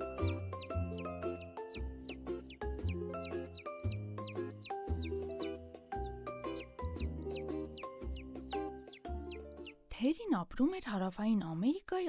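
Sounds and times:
chicks peeping: 0.0s - 9.8s.

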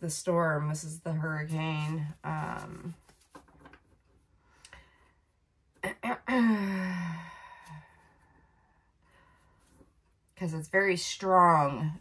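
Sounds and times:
woman sighing: 6.2s - 8.0s.

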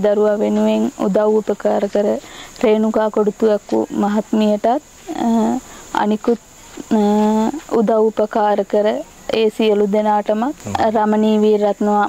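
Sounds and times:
insects droning: 0.0s - 12.0s
woman talking: 0.0s - 12.0s.

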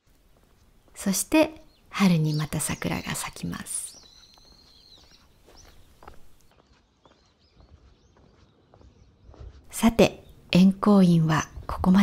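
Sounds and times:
soft footsteps on path: 0.0s - 12.0s
faint bird chirps: 0.9s - 12.0s.

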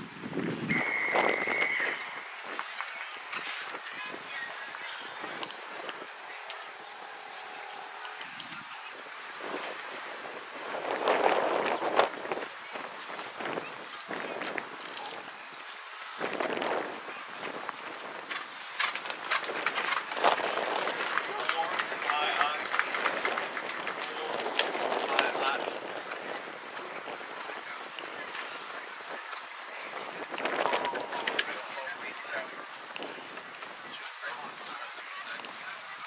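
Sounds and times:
indistinct voices: 0.7s - 12.5s.

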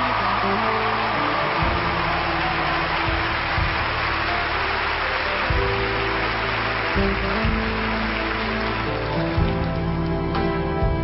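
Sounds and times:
slow soul ballad: 0.2s - 11.0s.

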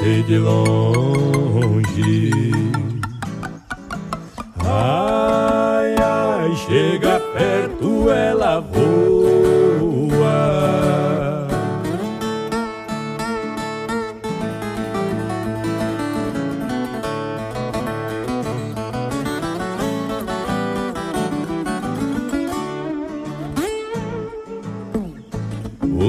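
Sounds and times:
plucked acoustic guitar melody: 0.0s - 26.0s.

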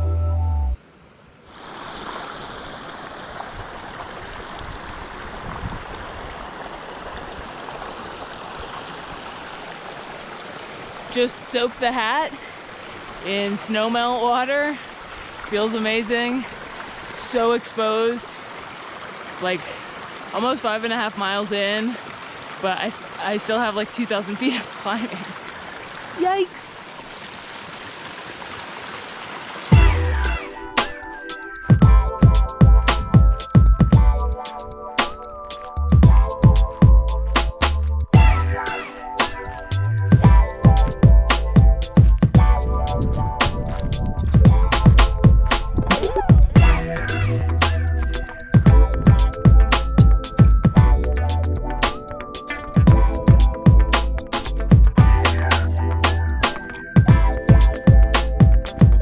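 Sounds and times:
held music chord: 0.0s - 0.8s, 29.7s - 43.4s, 46.6s - 59.0s
stream running water: 0.8s - 37.4s, 38.1s - 51.1s.

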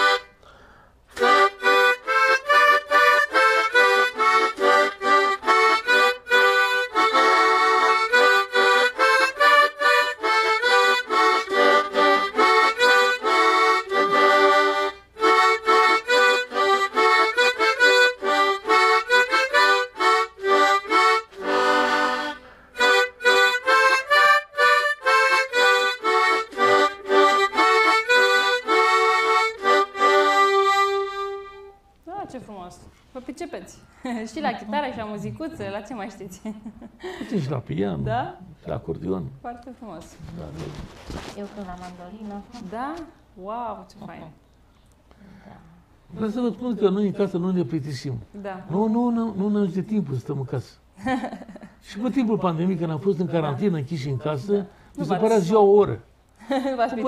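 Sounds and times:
harmonica melody: 0.0s - 32.6s, 46.1s - 50.9s, 51.8s - 56.0s.

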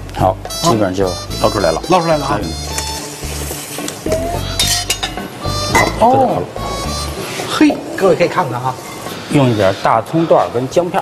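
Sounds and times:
background music: 0.0s - 8.5s
metal utensils clinking on a pot: 4.6s - 6.0s.

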